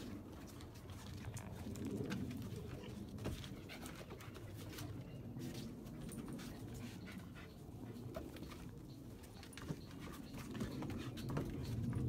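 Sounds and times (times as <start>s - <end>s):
dogs panting: 0.0s - 12.0s.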